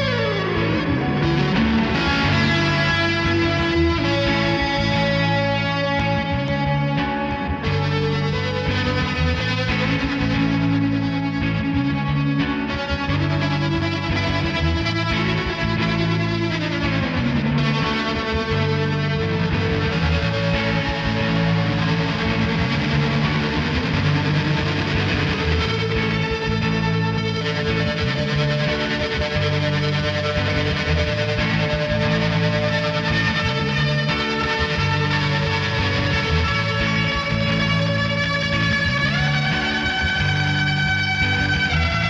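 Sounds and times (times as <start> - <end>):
electric guitar sustained chords: 0.0 - 42.0.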